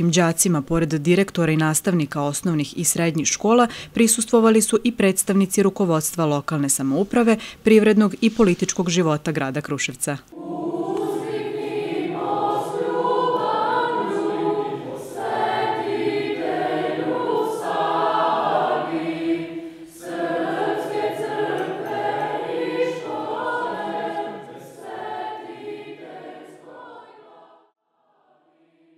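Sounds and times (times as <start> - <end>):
choir singing a cappella: 10.3 - 28.9.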